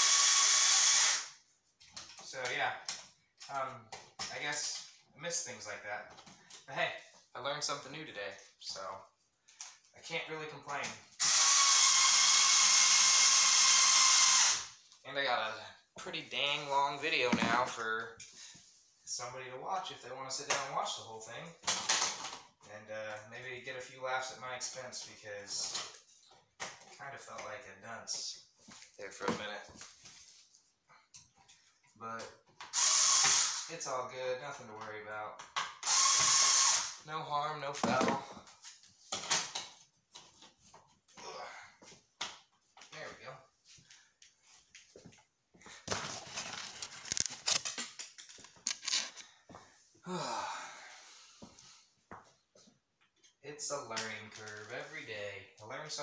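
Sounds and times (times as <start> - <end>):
cordless drill motor running: 0.0 - 1.3, 11.2 - 14.7, 32.7 - 33.6, 35.8 - 37.0.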